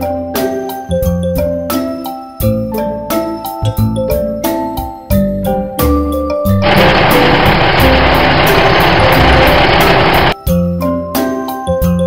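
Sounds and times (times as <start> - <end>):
children's music with mallets: 0.0 - 6.5
loud rough engine: 6.6 - 10.4.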